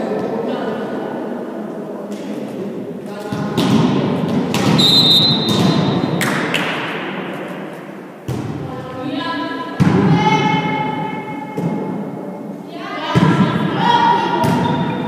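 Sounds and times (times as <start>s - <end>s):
volleyball being struck: 3.4s - 7.1s
referee whistle blast: 4.8s - 5.8s.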